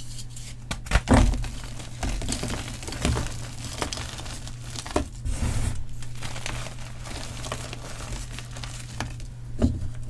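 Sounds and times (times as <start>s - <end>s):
hand crushing chalk powder: 0.4s - 9.4s.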